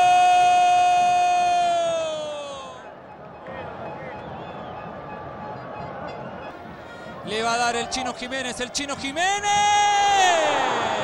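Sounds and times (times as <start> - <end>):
stadium crowd noise: 0.0 - 11.0
commentator shouting goal: 7.2 - 11.0.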